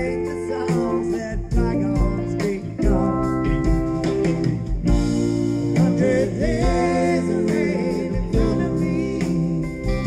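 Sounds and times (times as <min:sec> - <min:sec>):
sung vocal with vibrato: 0:00.0 - 0:03.9, 0:05.6 - 0:10.0
electric guitars: 0:00.0 - 0:10.0
rock band playing: 0:00.0 - 0:10.0.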